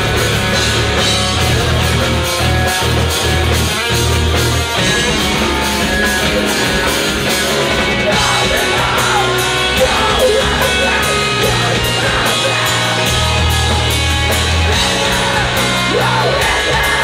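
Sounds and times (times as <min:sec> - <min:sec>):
bass guitar: 0:00.0 - 0:17.0
drum kit: 0:00.0 - 0:17.0
electric guitars: 0:00.0 - 0:17.0.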